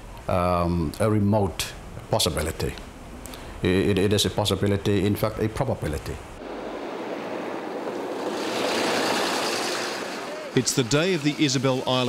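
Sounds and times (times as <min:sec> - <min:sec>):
vehicle passing on road: 0:06.4 - 0:12.0.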